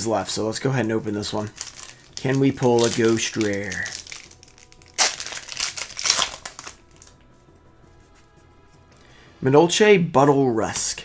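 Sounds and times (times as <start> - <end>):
foil wrapper tearing and crinkling: 1.3 - 7.2.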